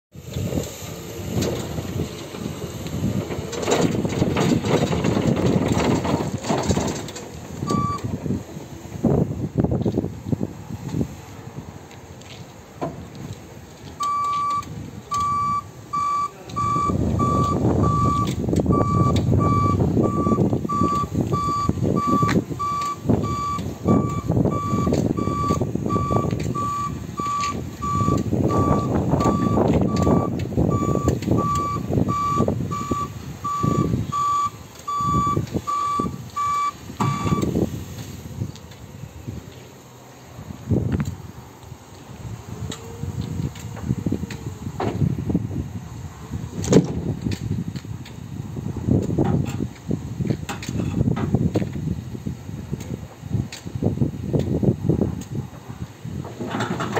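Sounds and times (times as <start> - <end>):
truck rumbling: 0.1 - 56.9
truck travel alarm beeping: 7.6 - 8.2, 14.0 - 37.7.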